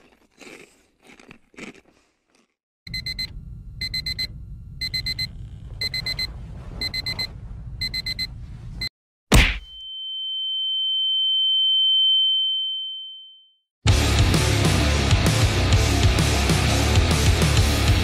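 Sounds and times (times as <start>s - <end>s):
alarm clock beeping: 2.9s - 8.3s
high-pitched ringing tone: 9.8s - 13.6s.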